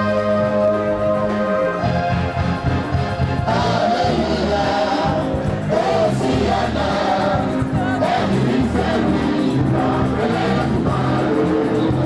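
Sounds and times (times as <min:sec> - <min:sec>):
instrumental accompaniment: 0:00.0 - 0:12.0
steady low bass: 0:00.0 - 0:12.0
gospel choir singing: 0:02.9 - 0:12.0.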